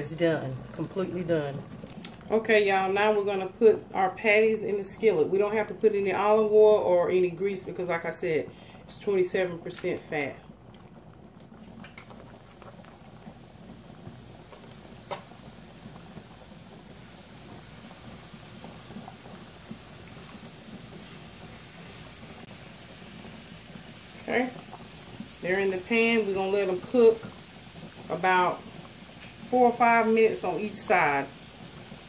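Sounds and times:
woman speaking: 0.0 - 10.4, 24.2 - 24.6, 25.4 - 27.3, 28.1 - 28.6, 29.5 - 31.3
pots boiling with low hiss: 0.0 - 32.0.

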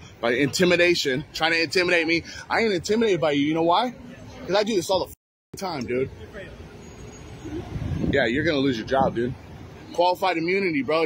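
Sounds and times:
motor vehicle rumbling: 5.6 - 11.0.

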